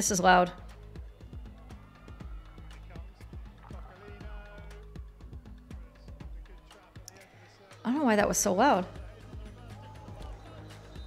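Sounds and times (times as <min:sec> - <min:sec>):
faint music: 0:00.0 - 0:11.0
stadium background: 0:00.0 - 0:11.0.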